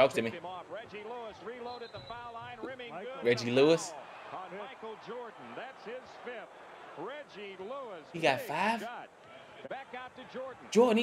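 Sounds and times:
commentator talking: 0:00.0 - 0:04.8, 0:07.2 - 0:09.0, 0:09.7 - 0:11.0
arena crowd noise: 0:00.0 - 0:11.0.

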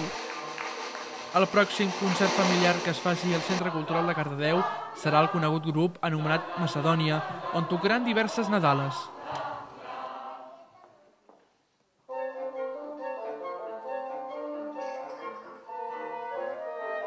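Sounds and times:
acoustic ensemble with wind instruments: 0:12.1 - 0:17.0.

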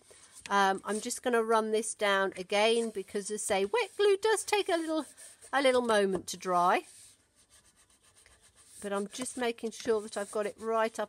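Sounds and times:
bone folder rubbing cardstock: 0:06.8 - 0:11.0.

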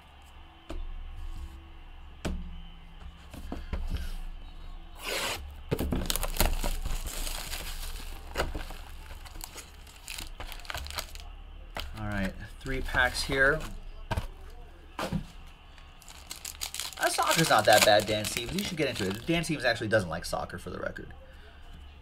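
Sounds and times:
foil card packs rustling: 0:05.0 - 0:19.7
wrapping tearing and crinkling: 0:05.8 - 0:13.7, 0:15.8 - 0:19.5.

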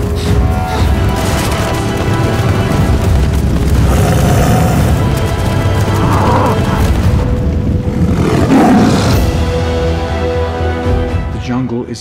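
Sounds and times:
trailer music: 0:00.0 - 0:12.0
stampeding herd rumble: 0:00.9 - 0:09.2
tiger roaring: 0:03.7 - 0:05.2, 0:05.8 - 0:06.8, 0:07.9 - 0:09.3.

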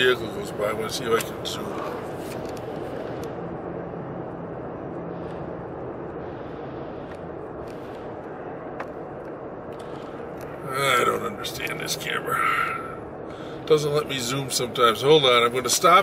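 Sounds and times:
car cabin road and engine noise: 0:00.0 - 0:16.0.

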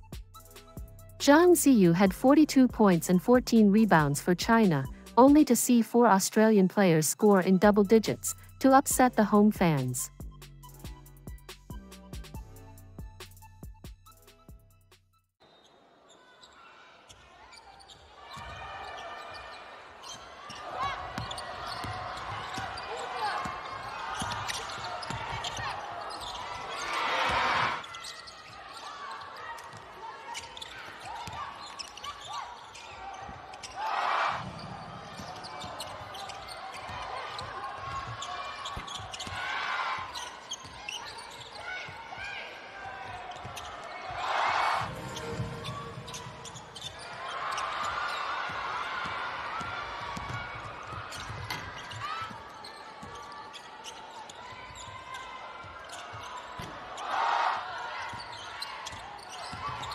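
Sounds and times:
crowd cheering loudly: 0:17.4 - 0:40.4, 0:41.1 - 0:53.6, 0:54.2 - 0:59.9
crowd din with voices: 0:18.4 - 0:59.9
basketball bouncing on court: 0:20.1 - 0:33.8, 0:34.4 - 0:44.2, 0:44.8 - 0:56.9, 0:58.0 - 0:59.9.

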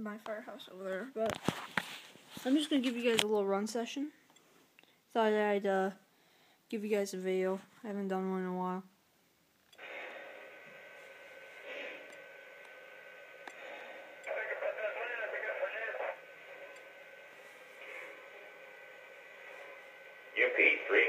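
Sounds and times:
steady faint tone: 0:00.0 - 0:21.0
tinny radio hiss: 0:00.0 - 0:21.0
muffled radio voice: 0:14.3 - 0:16.2, 0:20.4 - 0:21.0.

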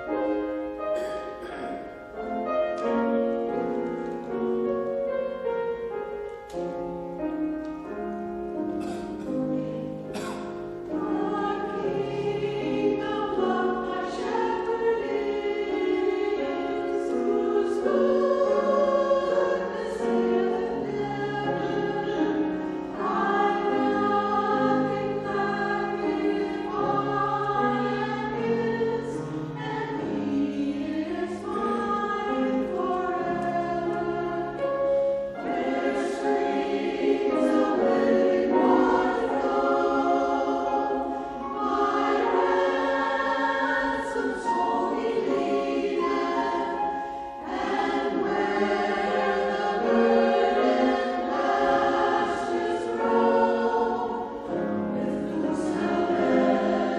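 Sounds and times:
mixed choir singing: 0:00.0 - 0:03.6, 0:08.8 - 0:56.9.

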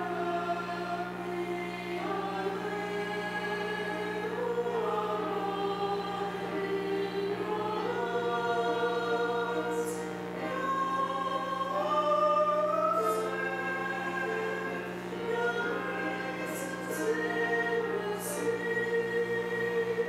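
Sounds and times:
choir singing held notes: 0:00.0 - 0:20.0.

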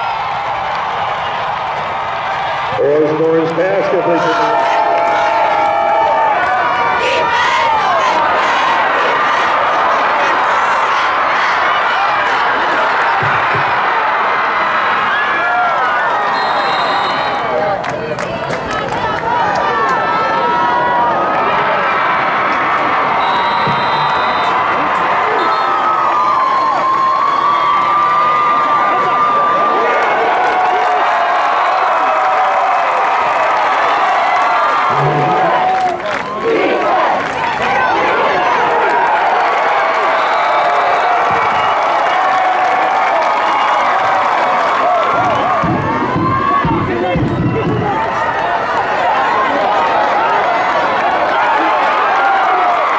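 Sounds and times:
crowd cheering and shouting: 0:00.0 - 0:52.9.

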